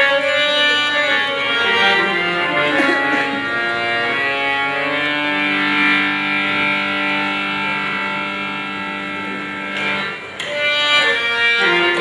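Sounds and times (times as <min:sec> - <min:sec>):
harmonium melody: 0:00.0 - 0:12.0.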